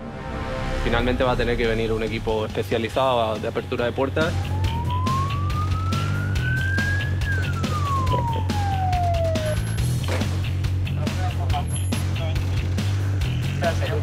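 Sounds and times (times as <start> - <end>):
music with low beat: 0.0 - 14.0
police siren wail: 4.1 - 10.0.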